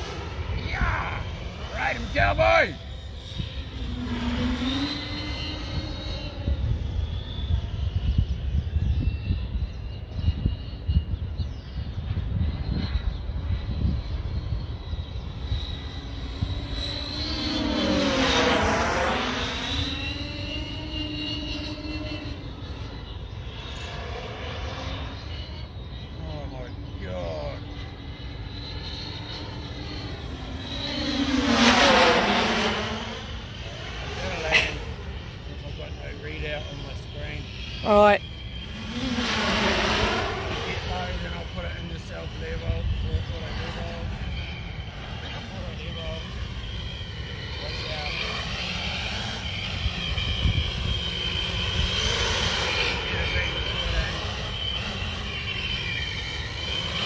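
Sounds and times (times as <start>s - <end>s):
drone motors whining: 0.0s - 57.0s.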